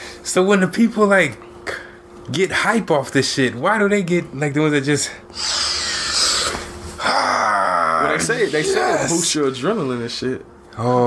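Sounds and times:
man sniffing hard: 5.3s - 6.8s
man moaning: 5.3s - 9.3s.

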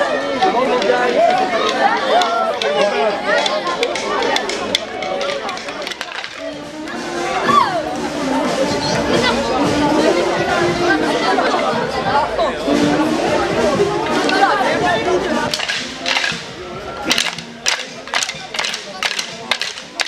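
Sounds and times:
crowd chatter: 0.0s - 20.0s
sharp irregular snaps: 15.5s - 20.0s.

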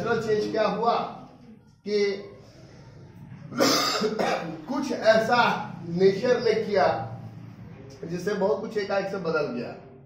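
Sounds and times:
man speaking: 0.0s - 1.2s, 4.4s - 7.1s
man coughing: 3.6s - 4.6s.

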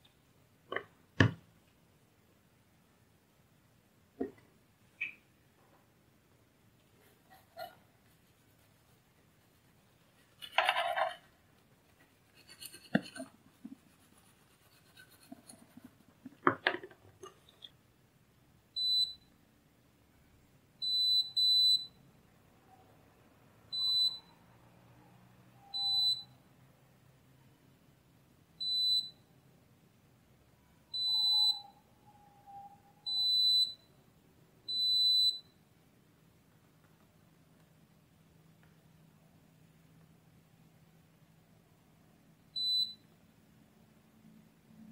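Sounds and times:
clicks and scrapes: 10.2s - 11.3s, 11.9s - 17.8s
multimeter continuity beeps: 18.8s - 19.3s, 20.8s - 22.0s, 23.7s - 24.3s, 25.6s - 26.4s, 28.6s - 29.3s, 31.0s - 31.9s, 33.0s - 34.0s, 34.7s - 35.6s, 42.5s - 43.1s.

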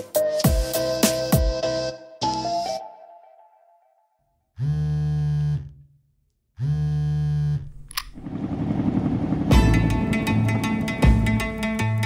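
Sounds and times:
music: 0.0s - 4.3s, 8.2s - 12.0s.

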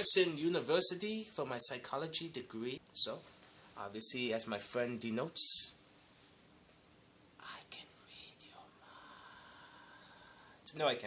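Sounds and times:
breathy whisper: 7.4s - 10.7s.

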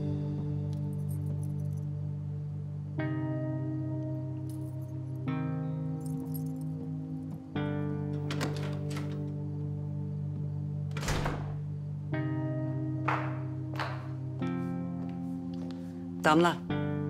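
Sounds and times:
low held music chords: 0.0s - 17.0s.

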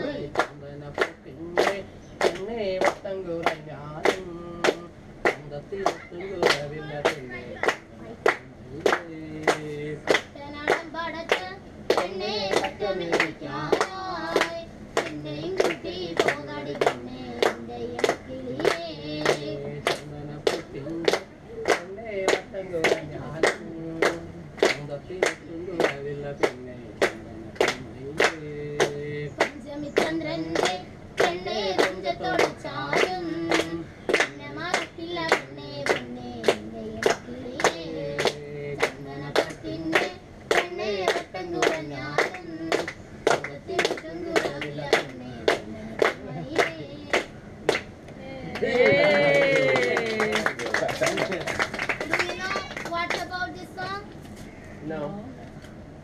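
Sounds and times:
group singing a chant: 0.0s - 47.2s
hands clapping a beat: 0.3s - 47.9s, 48.5s - 53.3s.

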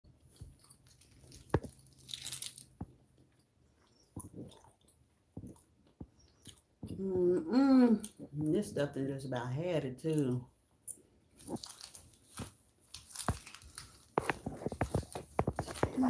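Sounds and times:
gum chewing: 0.3s - 8.3s, 10.8s - 16.0s
woman speaking: 6.9s - 10.5s, 15.7s - 16.0s.

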